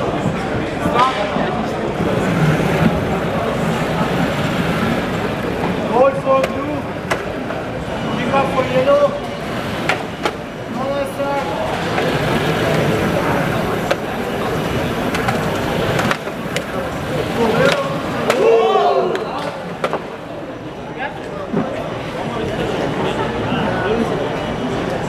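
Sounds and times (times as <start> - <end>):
people talking indistinctly: 0.0 - 25.0.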